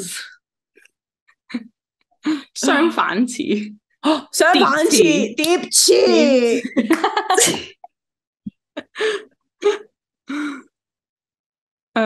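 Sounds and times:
women laughing: 0:06.5 - 0:07.9.

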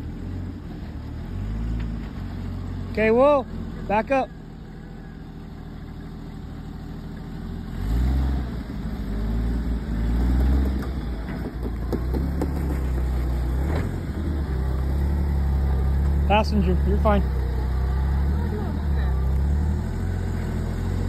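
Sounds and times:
engine idling and revving: 0:00.0 - 0:21.0.

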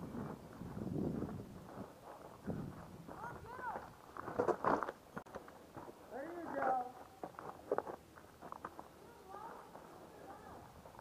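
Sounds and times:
footsteps: 0:00.0 - 0:11.0.

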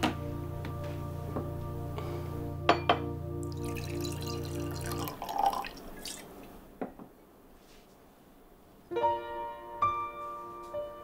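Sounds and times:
wine pouring into a glass: 0:03.4 - 0:06.5.

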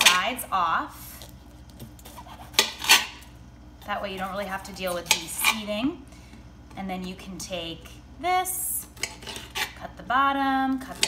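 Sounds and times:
knife slicing a pepper: 0:01.1 - 0:03.2
blade scraping a cutting board: 0:02.0 - 0:03.2, 0:04.2 - 0:05.7, 0:08.9 - 0:09.8.

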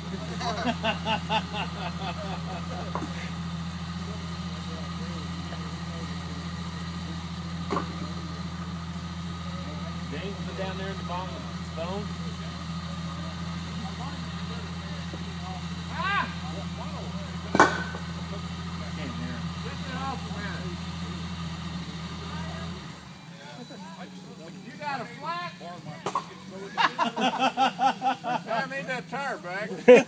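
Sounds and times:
car engine idling: 0:00.0 - 0:30.0
faint voices: 0:00.0 - 0:30.0.

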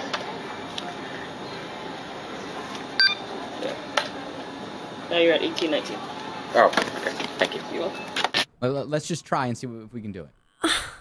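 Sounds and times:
short electronic beep: 0:03.0 - 0:03.2.

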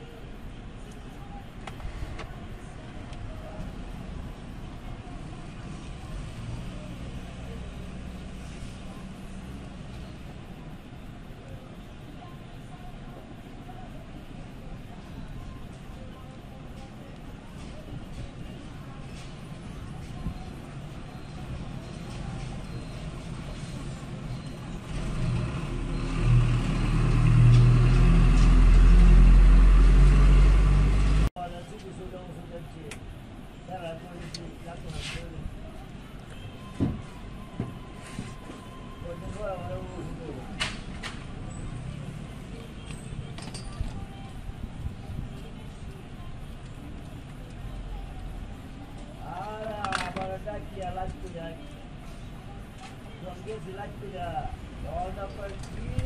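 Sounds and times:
vehicle engine rumbling: 0:00.0 - 0:11.3, 0:16.8 - 0:31.4.

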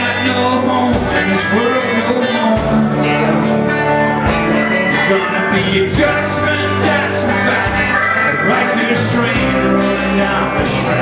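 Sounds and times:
country-rock band playing: 0:00.0 - 0:11.0.

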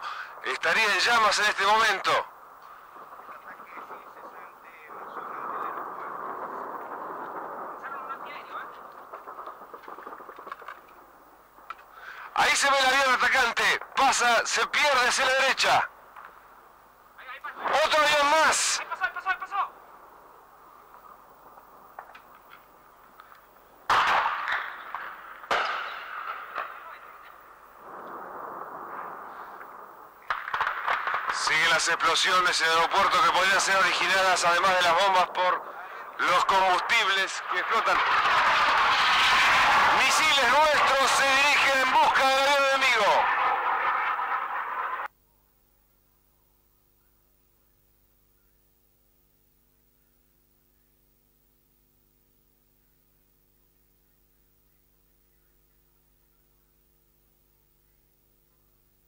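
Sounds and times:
steady background noise: 0:00.0 - 0:59.0
man talking: 0:00.4 - 0:02.3, 0:03.2 - 0:06.3, 0:07.8 - 0:08.8, 0:12.3 - 0:15.9, 0:17.2 - 0:19.8, 0:31.3 - 0:38.0, 0:40.0 - 0:43.3
sharp explosive report: 0:02.1 - 0:11.0, 0:23.9 - 0:45.1
explosion blasts: 0:02.9 - 0:10.8, 0:27.8 - 0:45.1.

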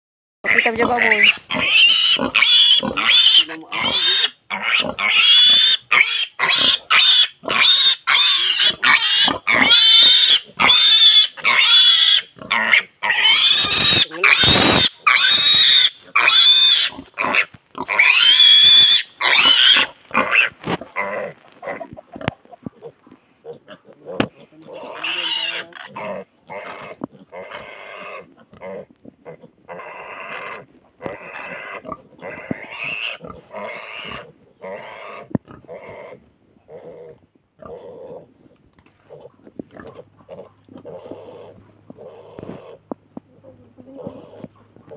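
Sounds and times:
pigs squealing: 0:00.4 - 0:36.2, 0:39.1 - 0:42.8.

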